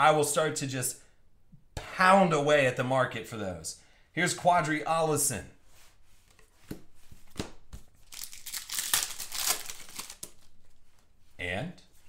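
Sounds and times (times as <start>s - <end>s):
trading cards rustling: 6.2s - 11.1s.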